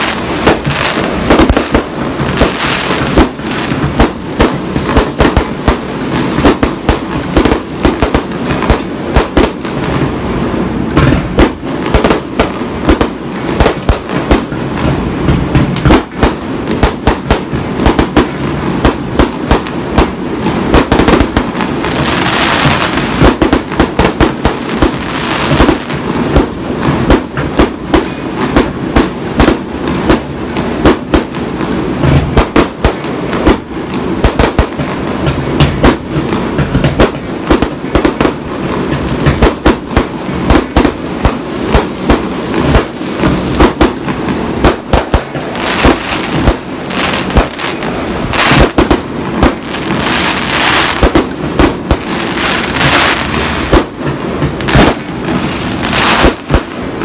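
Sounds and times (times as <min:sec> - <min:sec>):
fireworks bangs and crackles: 0:00.0 - 0:57.0
fireworks hissing crackle: 0:00.0 - 0:57.0.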